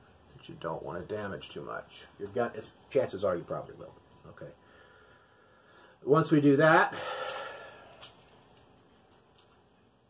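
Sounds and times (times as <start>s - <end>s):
man breathing out: 6.9s - 8.1s.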